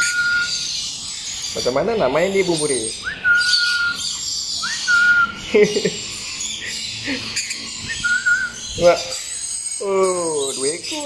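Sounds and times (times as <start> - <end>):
sliding whistled notes: 0.0 - 0.7, 3.0 - 5.4, 7.8 - 8.7
thin high bird chirps: 0.0 - 11.0.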